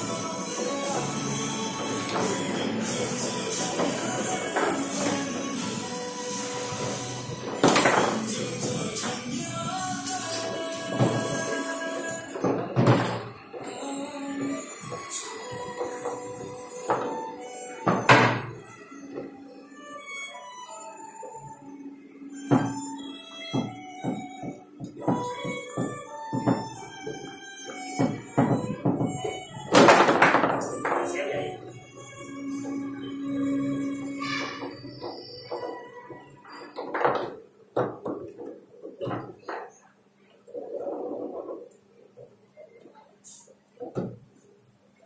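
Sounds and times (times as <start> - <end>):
background music: 0.0 - 39.5
foosball knock with ring: 7.5 - 8.2, 16.9 - 18.6, 28.0 - 31.2
foosball knocks and clacks: 7.5 - 8.3, 28.0 - 31.2, 36.8 - 39.6
rods banging against table: 7.5 - 8.3.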